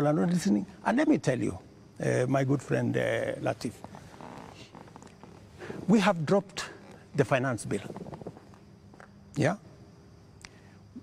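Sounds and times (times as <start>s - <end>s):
man speaking: 0.0s - 3.8s, 5.8s - 8.0s, 9.4s - 9.6s
faint background noise: 0.0s - 11.0s.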